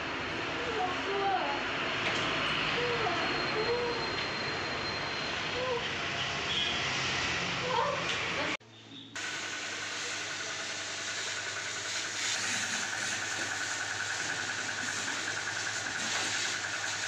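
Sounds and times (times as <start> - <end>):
pressure washer spraying water: 9.2 - 17.0.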